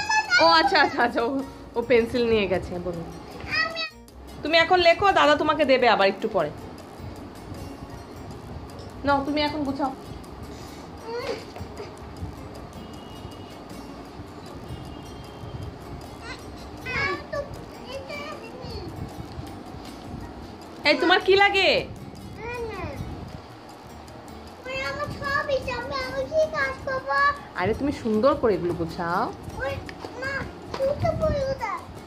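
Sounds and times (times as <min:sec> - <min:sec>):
toddler vocalising: 0:11.0 - 0:12.0.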